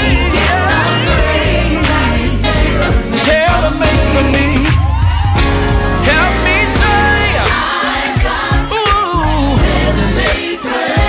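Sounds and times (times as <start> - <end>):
person singing gospel: 0.0 - 4.9, 6.0 - 11.0
bass and band accompaniment: 0.0 - 10.5.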